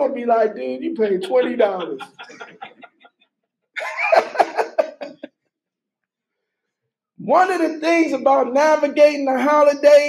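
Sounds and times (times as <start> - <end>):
man laughing in breathy bursts: 1.2 - 3.1, 3.8 - 5.3.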